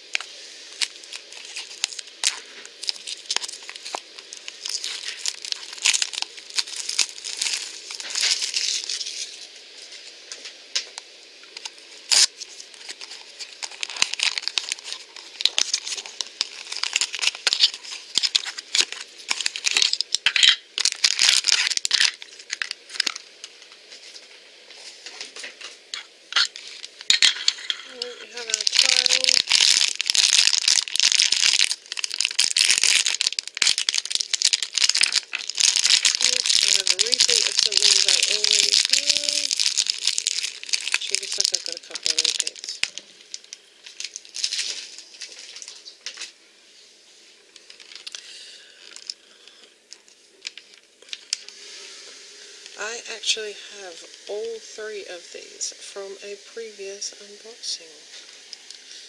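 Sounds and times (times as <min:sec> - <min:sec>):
cellophane crinkling and tearing: 0:00.0 - 0:24.2, 0:25.1 - 0:46.4, 0:47.4 - 0:51.7.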